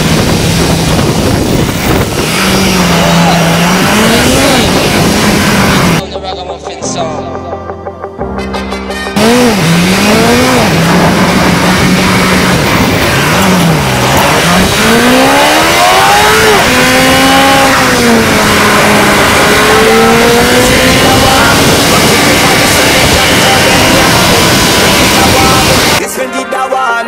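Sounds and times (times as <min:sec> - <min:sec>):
car engine revving: 0:00.0 - 0:06.0, 0:09.2 - 0:26.0.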